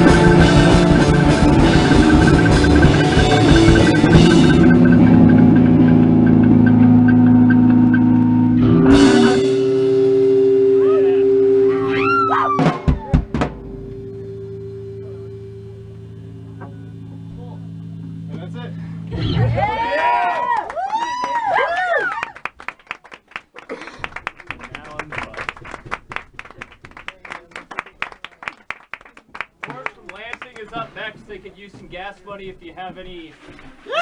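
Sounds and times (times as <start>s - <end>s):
sharp hits: 0.0s - 17.2s
noise rock drums and guitar: 0.0s - 19.7s
droning tones: 0.0s - 20.0s
low hum: 0.0s - 20.9s.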